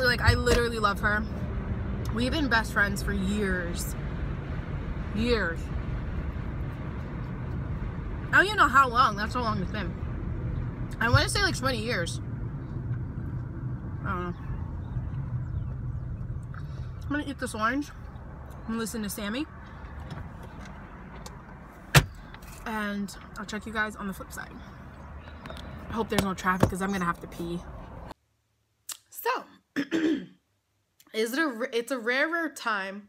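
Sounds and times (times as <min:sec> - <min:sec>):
car engine and road noise: 0:00.0 - 0:28.2.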